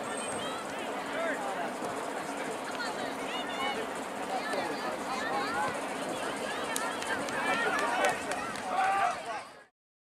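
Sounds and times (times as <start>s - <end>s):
people shouting and talking: 0.0s - 9.7s.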